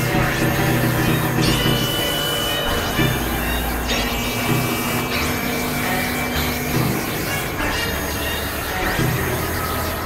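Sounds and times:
synthesizer drone and noise music: 0.0 - 10.0.

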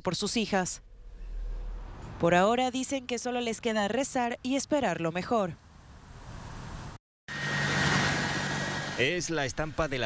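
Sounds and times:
low hum: 0.7 - 2.4
jet engines running: 7.4 - 10.0.

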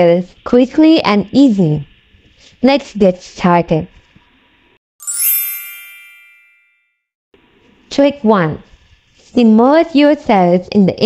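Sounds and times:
bright chime ding: 5.0 - 6.9.

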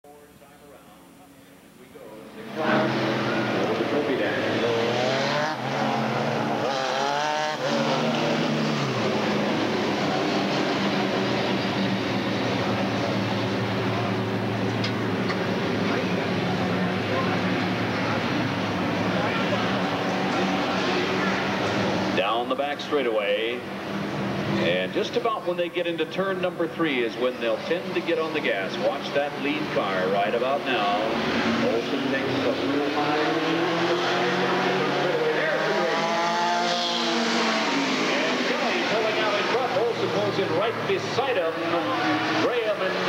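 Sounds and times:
race car engines droning: 0.1 - 43.0.

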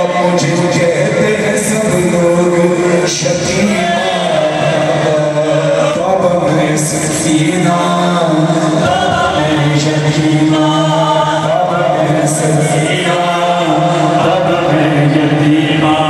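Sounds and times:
man chanting lament over loudspeakers: 0.0 - 16.0.

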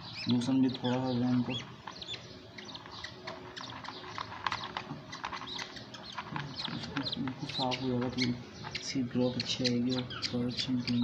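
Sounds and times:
budgerigar chicks peeping: 0.0 - 11.0.

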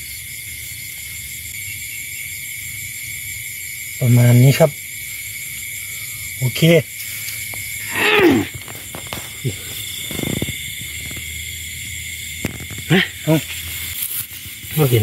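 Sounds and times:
night insects chirring: 0.0 - 15.0
person calling out: 7.9 - 8.6.

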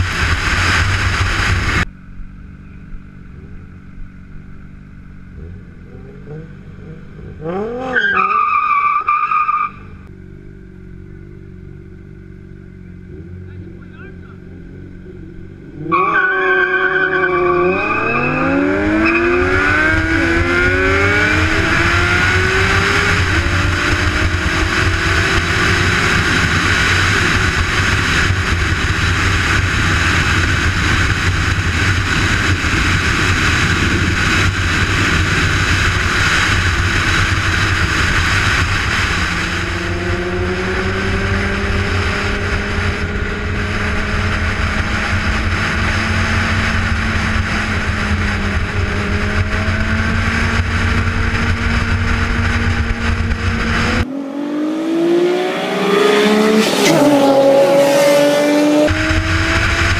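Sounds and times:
wind rush on microphone: 0.0 - 1.9, 18.4 - 54.1, 55.3 - 59.9
motorcycle engine running: 0.0 - 8.0, 9.7 - 15.9, 18.4 - 59.9.

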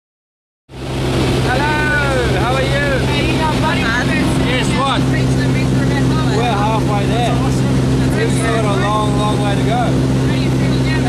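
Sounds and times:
aircraft piston engine drone: 0.7 - 11.0
people talking: 1.4 - 11.0.

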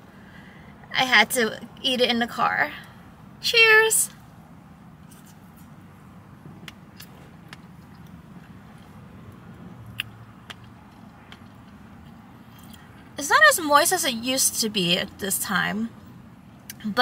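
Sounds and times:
person chewing: 6.6 - 12.9.

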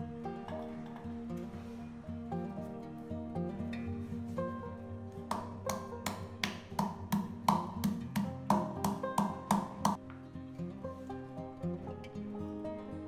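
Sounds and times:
guitar background music: 0.0 - 13.0
wooden pestle pounding in metal bowl: 5.3 - 10.0.

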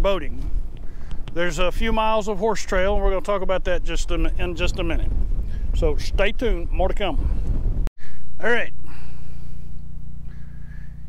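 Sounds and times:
generator engine humming: 6.7 - 11.0.

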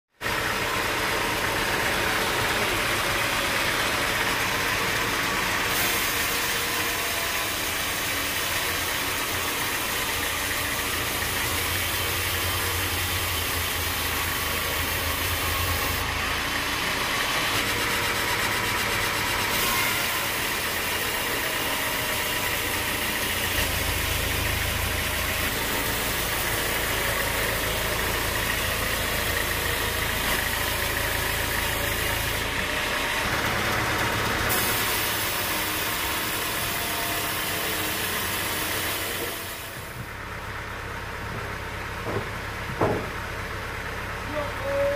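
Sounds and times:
band saw cutting log: 0.5 - 40.1.

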